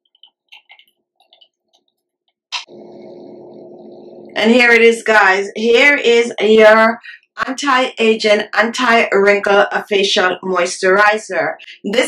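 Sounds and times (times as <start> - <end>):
low hum with hiss: 2.6 - 5.4.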